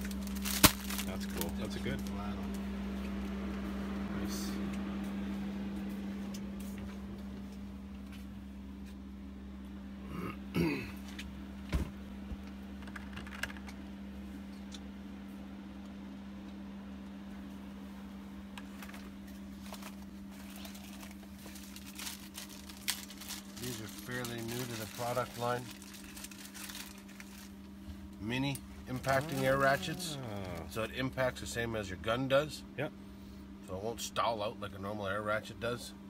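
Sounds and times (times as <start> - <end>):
steady low hum: 0.0 - 36.0
person murmuring: 10.0 - 11.0, 28.9 - 30.9.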